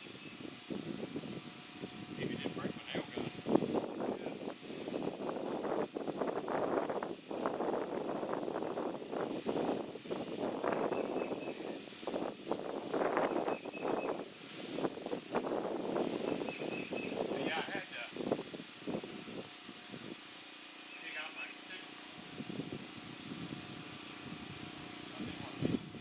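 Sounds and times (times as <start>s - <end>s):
wind buffeting microphone: 0.0s - 20.6s, 22.0s - 26.0s
leaves rustling: 0.0s - 26.0s.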